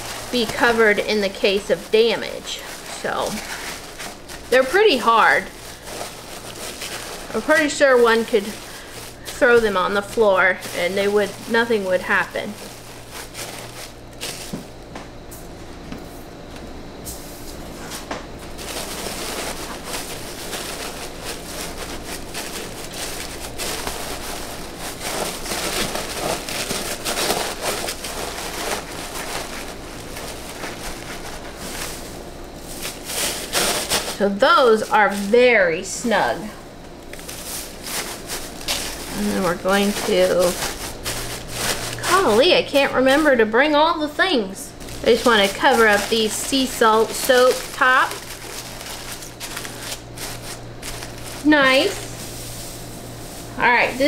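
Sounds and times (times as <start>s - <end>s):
paper shred rustling and crackling: 0.0s - 14.9s, 17.5s - 54.0s.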